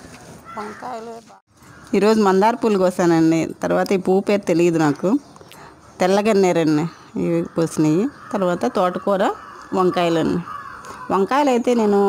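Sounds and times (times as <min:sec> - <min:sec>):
woman speaking: 0:00.6 - 0:05.2, 0:06.0 - 0:12.0.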